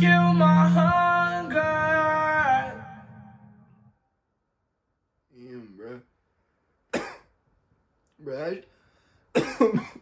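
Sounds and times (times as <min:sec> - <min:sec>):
man coughing: 0:06.9 - 0:07.4, 0:09.3 - 0:10.0.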